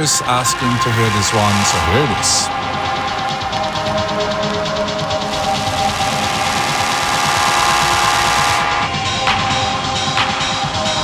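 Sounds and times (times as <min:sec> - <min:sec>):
rising hiss: 0:00.0 - 0:08.8
techno music with synth notes: 0:00.0 - 0:11.0.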